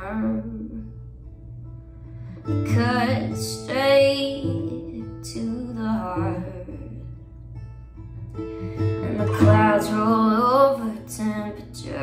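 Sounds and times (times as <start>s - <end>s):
woman singing: 0.0s - 1.0s, 2.5s - 7.3s, 8.7s - 12.0s
acoustic guitar strummed chords: 0.0s - 12.0s.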